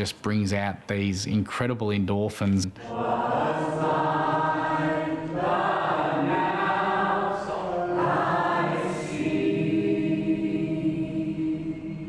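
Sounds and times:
small choir singing long notes: 0:02.8 - 0:12.0.

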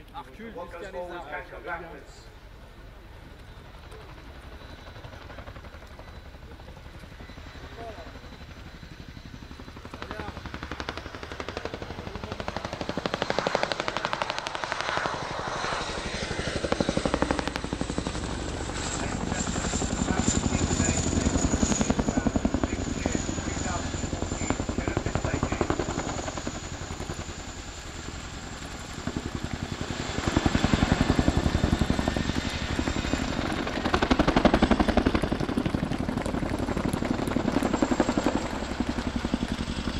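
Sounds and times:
helicopter rotor beat: 0:00.4 - 0:39.9
helicopter engine whine: 0:00.6 - 0:39.9.

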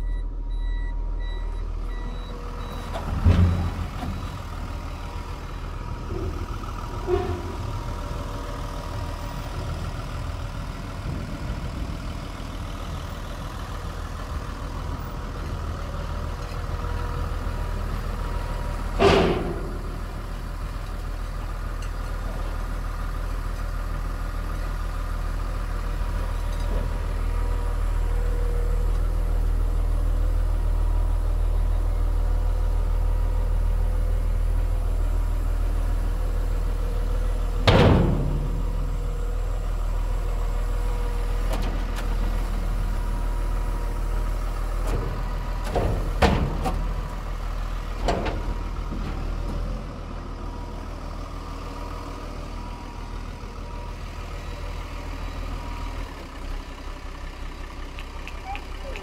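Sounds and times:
diesel engine idling: 0:00.0 - 0:59.0.

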